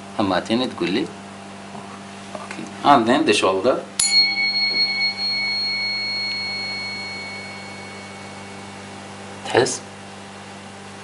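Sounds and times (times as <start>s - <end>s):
tuning fork ringing: 4.0s - 9.6s.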